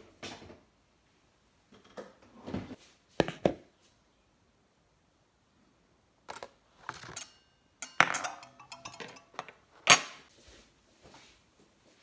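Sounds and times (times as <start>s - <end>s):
metal utensils clinking on countertop: 6.3s - 10.2s.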